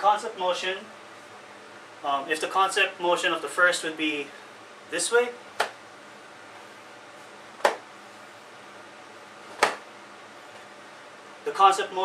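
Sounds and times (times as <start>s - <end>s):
towel snapping: 9.5s - 9.9s.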